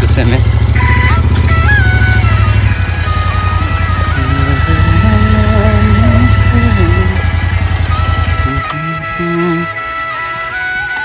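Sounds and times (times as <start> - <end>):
motorcycle engine running: 0.0 - 11.0
music with sustained melody: 0.1 - 11.0.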